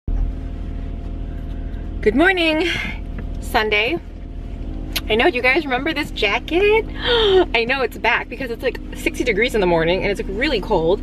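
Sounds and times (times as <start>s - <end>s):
car cabin low rumble: 0.1s - 11.0s
faint steady hum: 0.1s - 11.0s.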